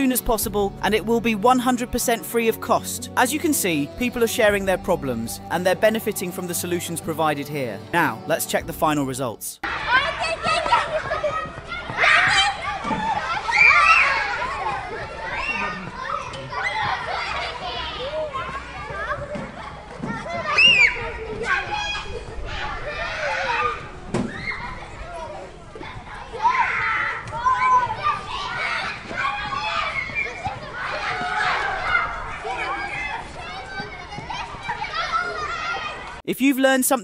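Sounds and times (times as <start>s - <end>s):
children laughing and shouting: 9.6s - 36.2s.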